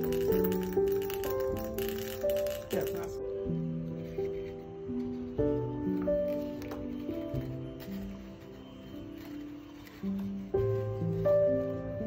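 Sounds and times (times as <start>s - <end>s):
small pills rattling into vials: 0.0s - 3.2s
instrumental background music: 0.0s - 12.0s.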